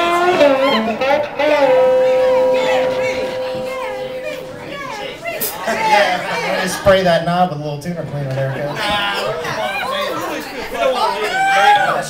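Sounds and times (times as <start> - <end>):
long held tone: 0.0 - 5.4
voices talking and calling out: 0.0 - 12.0.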